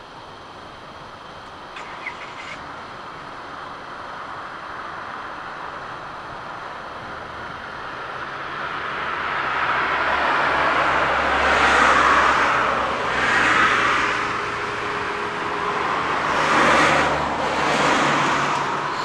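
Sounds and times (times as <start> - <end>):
vehicles passing: 0.0 - 19.0.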